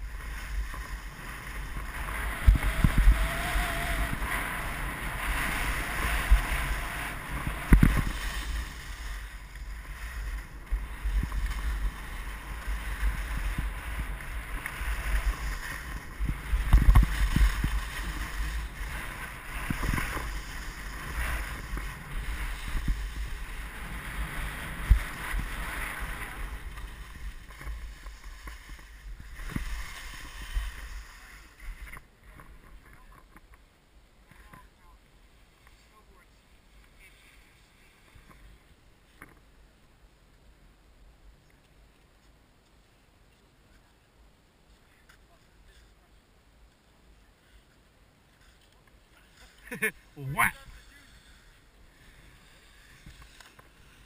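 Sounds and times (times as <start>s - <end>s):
wind rushing over microphone: 0.0s - 32.7s
skis scraping over snow: 0.0s - 33.5s, 34.1s - 39.5s, 41.5s - 54.0s.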